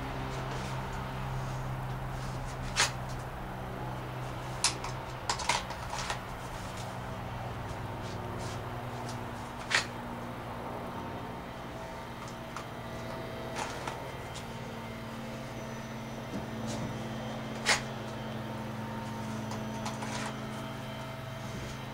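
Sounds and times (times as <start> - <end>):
steady low hum: 0.0 - 21.9.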